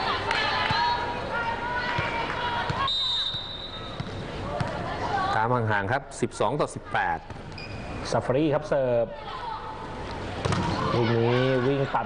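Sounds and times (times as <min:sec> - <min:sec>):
arena crowd voices: 0:00.0 - 0:05.5, 0:09.0 - 0:12.0
volleyball bouncing on floor: 0:10.4 - 0:10.8.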